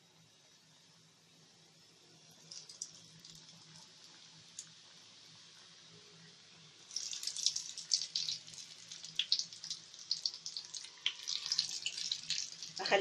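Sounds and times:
dough sizzling in hot oil: 0.0s - 13.0s.

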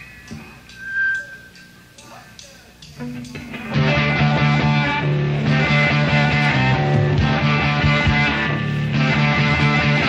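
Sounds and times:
electric guitar feedback whistle: 0.0s - 1.8s
low rock band sound: 2.8s - 10.0s.

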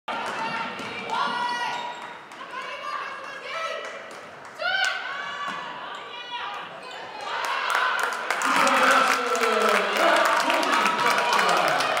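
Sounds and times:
sneakers squeaking: 0.7s - 2.2s
players' voices echoing: 8.2s - 12.0s.

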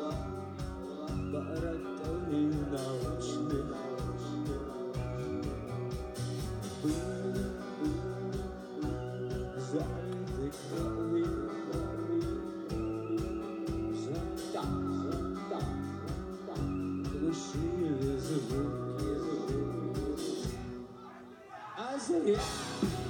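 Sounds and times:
man singing: 0.0s - 6.1s, 6.7s - 23.0s
live rock band playing: 0.0s - 21.0s, 22.4s - 23.0s.

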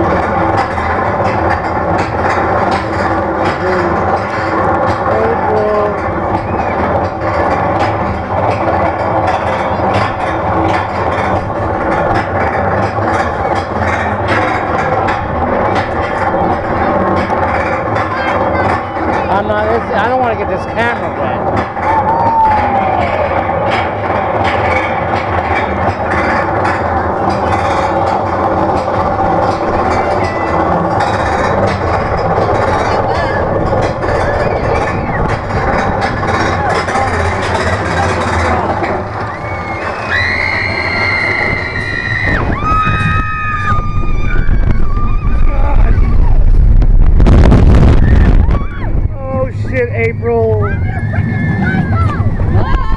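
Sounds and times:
roller coaster rattling on track: 0.0s - 52.9s
wind buffeting microphone: 0.0s - 52.9s.

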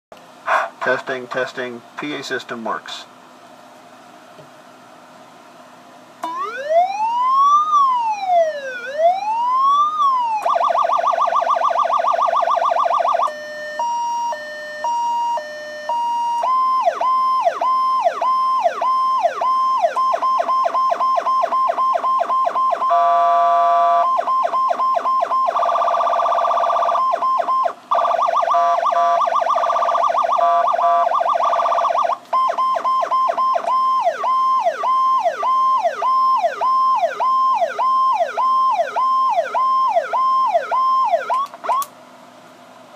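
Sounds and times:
electronic siren: 6.2s - 41.9s.

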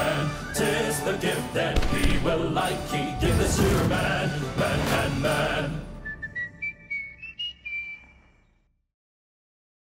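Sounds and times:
whistled jingle: 0.0s - 1.7s, 4.1s - 8.4s.

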